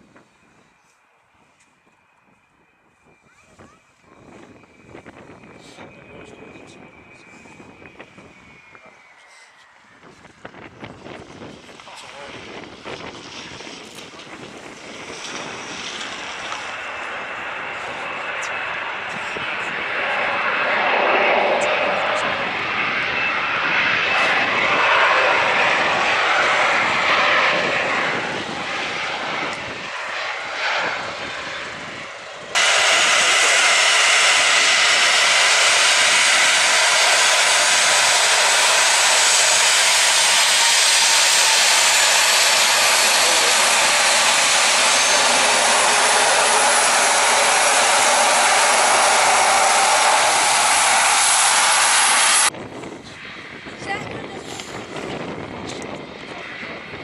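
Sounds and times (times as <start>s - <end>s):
jet engines: 0.0s - 57.0s
jet engine hiss taxiing past: 4.3s - 52.5s.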